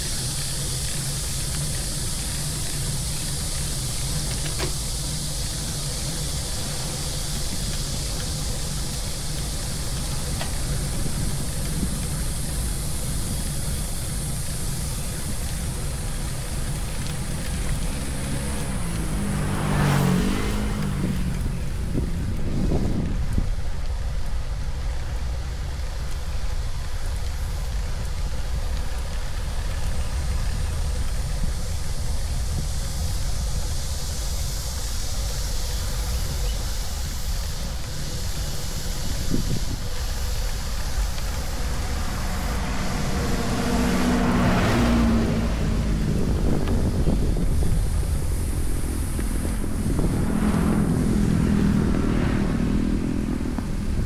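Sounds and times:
tyre and road noise: 0.0s - 54.0s
wind rumbling on microphone: 0.0s - 54.0s
motor vehicle passing: 16.7s - 23.1s, 41.0s - 54.0s.

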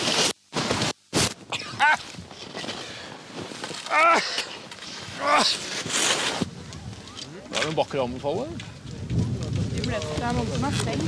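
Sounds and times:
outdoor noise hiss: 0.0s - 11.0s.

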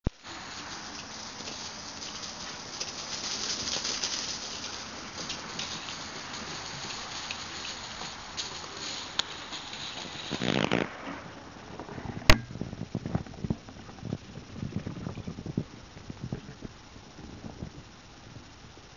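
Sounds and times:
faint ticks and crackles: 0.1s - 18.9s
steady hiss: 0.1s - 18.9s.

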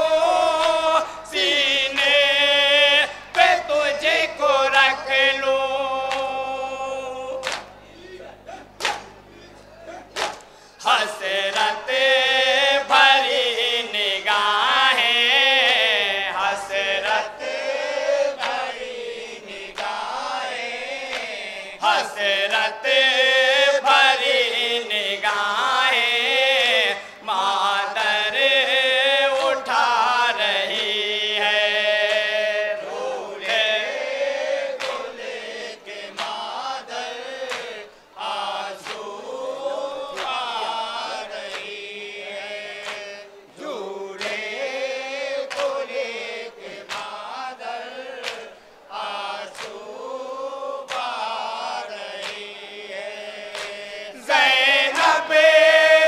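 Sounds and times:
men chanting a lament: 0.0s - 56.0s.

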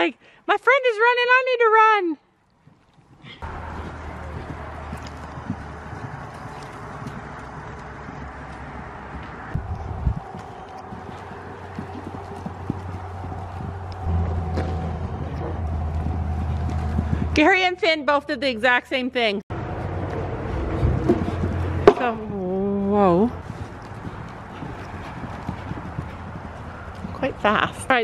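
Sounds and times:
horse hoofbeats on dirt: 2.6s - 18.8s, 19.6s - 28.0s
steady low rumble: 3.4s - 18.0s.

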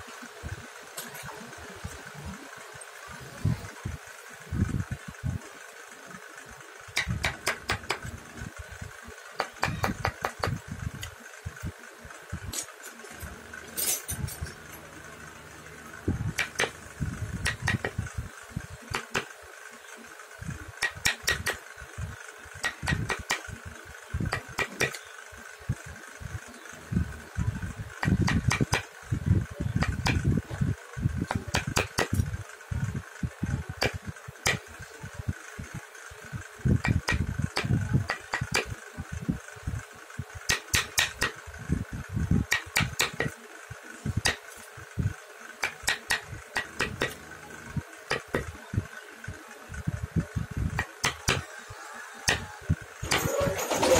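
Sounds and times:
steady hum: 0.0s - 53.9s.

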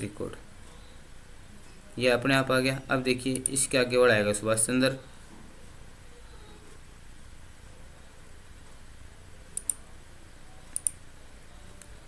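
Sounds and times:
computer mouse button clicks: 10.8s - 11.0s.

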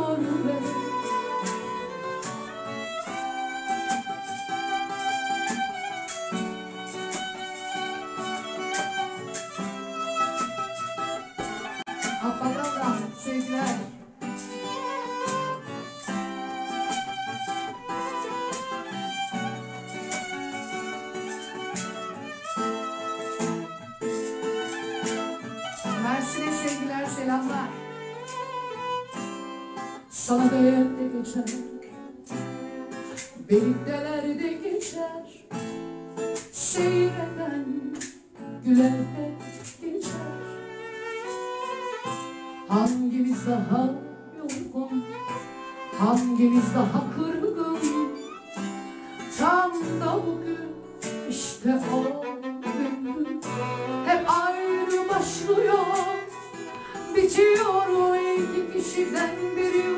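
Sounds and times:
woman singing: 0.0s - 2.5s, 11.0s - 20.1s, 25.8s - 28.1s, 30.0s - 35.5s, 36.4s - 40.6s, 42.0s - 48.4s, 49.2s - 59.9s
violin melody: 0.0s - 31.3s, 38.9s - 43.2s, 44.0s - 59.9s
acoustic guitar: 0.0s - 59.9s.

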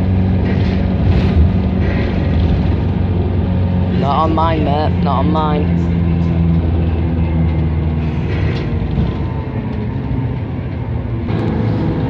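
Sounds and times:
bus engine hum: 0.0s - 12.0s.

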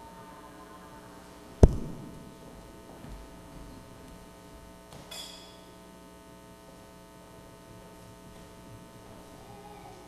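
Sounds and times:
faint electrical hum: 0.0s - 10.0s
loud thump with echo: 1.6s - 2.8s.

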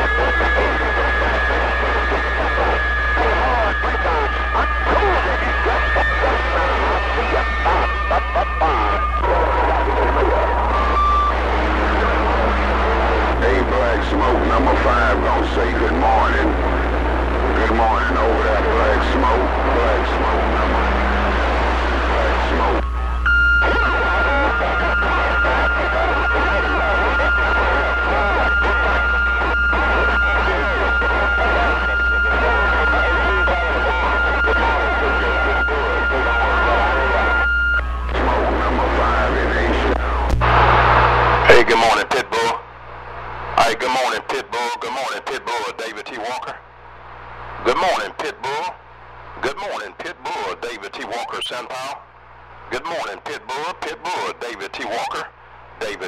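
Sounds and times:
steady radio whistle: 0.0s - 42.6s
low hum: 0.0s - 43.6s
garbled radio voices: 0.0s - 56.0s
radio static noise: 0.0s - 56.0s.

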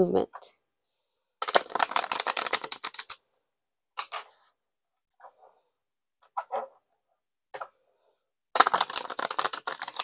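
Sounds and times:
cards tapping: 1.4s - 3.2s, 8.6s - 10.0s.

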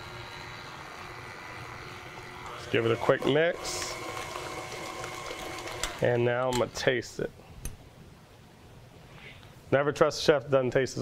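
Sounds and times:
stand mixer running: 0.0s - 6.0s.

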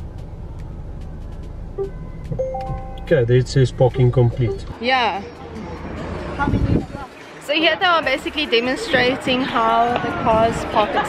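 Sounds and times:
car engine hum inside cabin: 0.0s - 4.9s.

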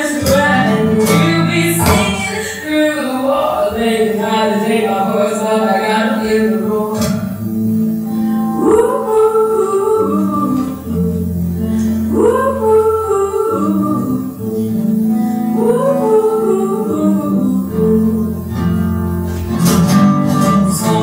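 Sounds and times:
woman singing: 0.0s - 7.4s, 8.0s - 21.0s
acoustic guitar: 0.0s - 21.0s.

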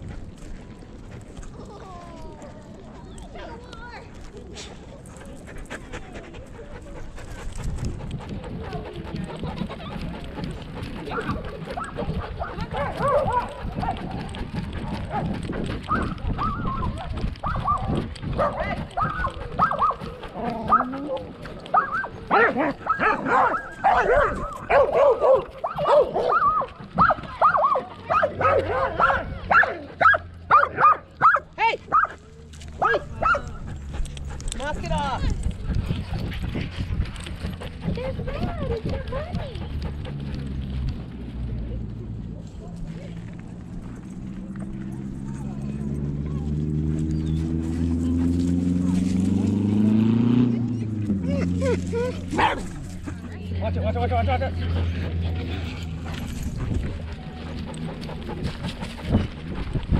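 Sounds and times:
low camera rumble: 0.0s - 59.9s
dogs barking and whining: 6.2s - 36.5s, 50.6s - 53.3s.

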